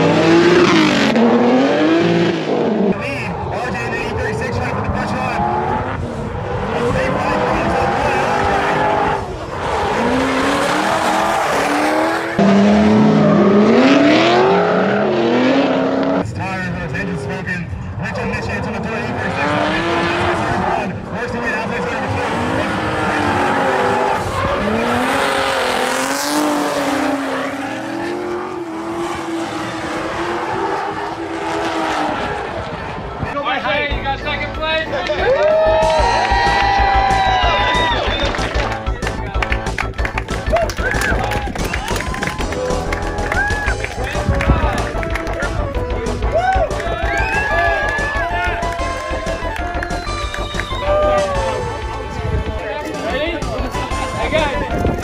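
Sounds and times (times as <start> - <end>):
car engines revving: 0.0 - 55.0
tires screeching: 0.0 - 55.0.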